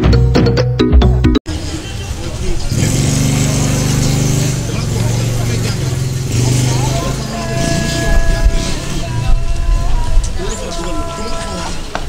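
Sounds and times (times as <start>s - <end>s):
street noise: 0.0s - 12.0s
vehicle engine droning: 1.5s - 12.0s.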